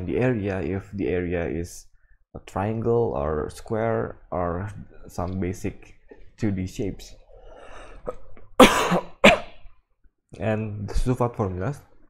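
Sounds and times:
person coughing: 8.1 - 9.7.

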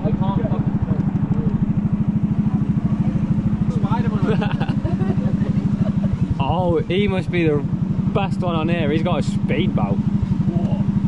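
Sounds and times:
boat engine chugging: 0.0 - 11.0.

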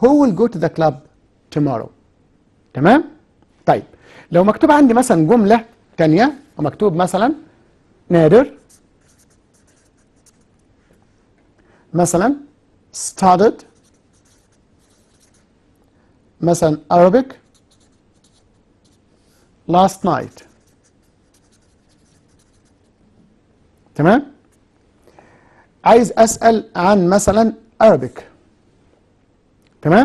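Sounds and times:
marker pen scratching paper: 8.4 - 10.7, 13.6 - 15.5, 17.3 - 19.5, 20.2 - 23.0.

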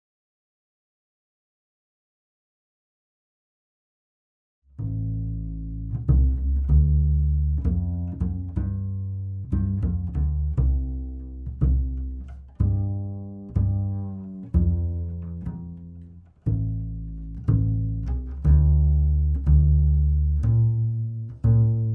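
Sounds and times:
double bass playing low notes: 4.7 - 21.9.

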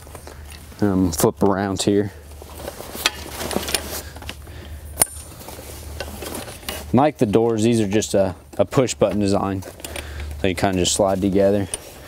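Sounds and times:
fabric rustling: 2.2 - 4.3
metal tubes clinking and knocking: 5.0 - 5.3.

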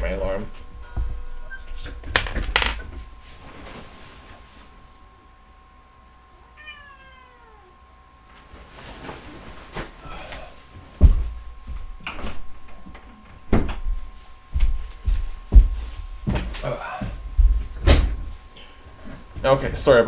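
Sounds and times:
cat meowing: 6.5 - 7.8
knocks and rustles: 10.8 - 18.4.

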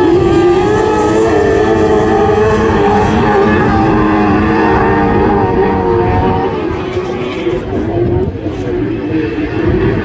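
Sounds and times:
racing buggy engines: 0.0 - 10.0.

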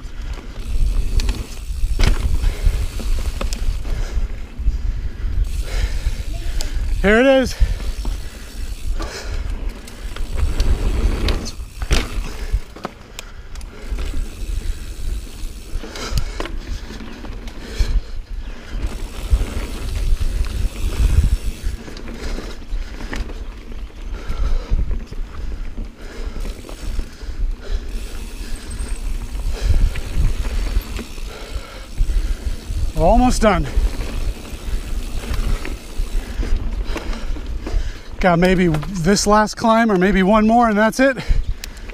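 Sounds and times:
bike knocking and rattling: 0.0 - 4.5, 5.4 - 40.3
wind buffeting camera: 0.0 - 39.1, 41.3 - 41.9
bike tyres rumbling on dirt: 0.0 - 41.9.

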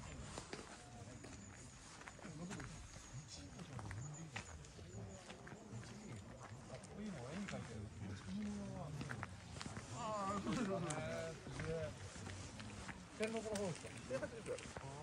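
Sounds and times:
footsteps on asphalt: 0.0 - 15.0
indistinct talk: 0.0 - 15.0.

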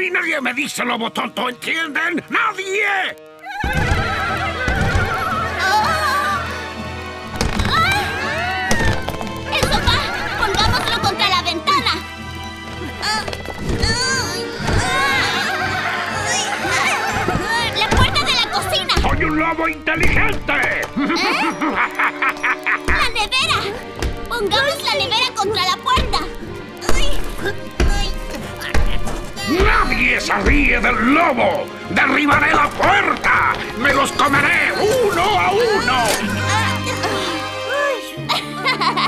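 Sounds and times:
cartoon background music: 0.0 - 39.0
high quavering voice laughing: 21.0 - 22.9.

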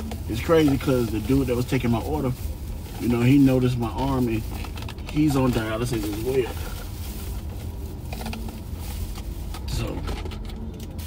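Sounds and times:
car idling rumble: 0.0 - 11.0
food container clicks and rustling: 3.0 - 6.7, 7.4 - 11.0.

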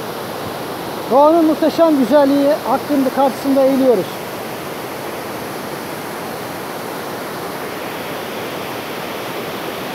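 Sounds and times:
waterfall rushing into pool: 0.0 - 9.9.

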